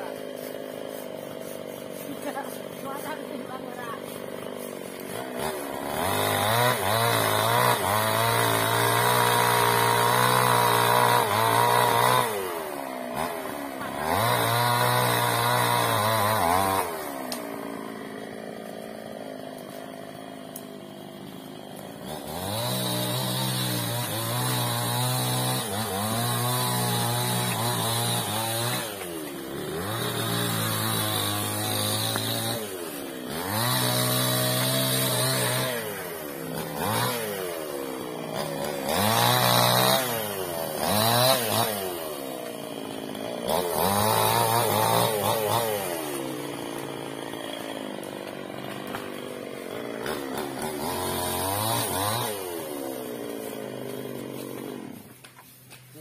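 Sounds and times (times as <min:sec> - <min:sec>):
chainsaw cutting wood: 0:00.0 - 0:56.0.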